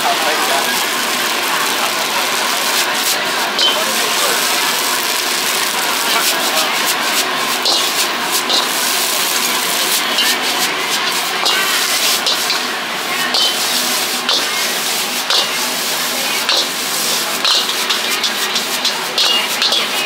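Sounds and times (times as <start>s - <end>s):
gas burner roaring: 0.0s - 20.0s
noodles sizzling: 0.0s - 20.0s
metal spatula scraping wok: 2.6s - 20.0s.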